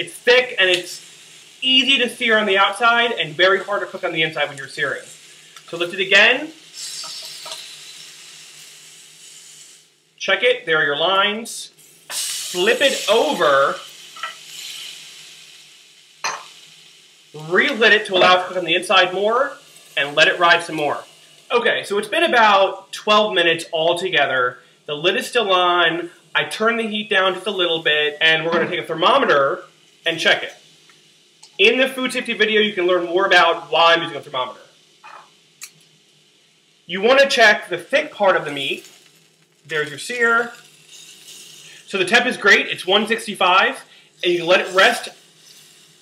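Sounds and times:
person speaking: 0:00.0 - 0:01.0, 0:01.6 - 0:05.1, 0:05.7 - 0:06.6, 0:12.5 - 0:13.8, 0:17.4 - 0:30.5, 0:31.5 - 0:35.2, 0:36.9 - 0:38.8, 0:39.7 - 0:40.6, 0:41.8 - 0:45.2
meat sizzling in a grill pan: 0:00.0 - 0:46.0
utensils rustling: 0:38.4 - 0:42.8, 0:44.2 - 0:46.0.

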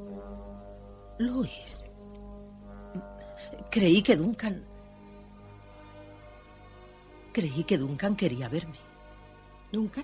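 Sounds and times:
film score with low held notes: 0:00.0 - 0:10.0.

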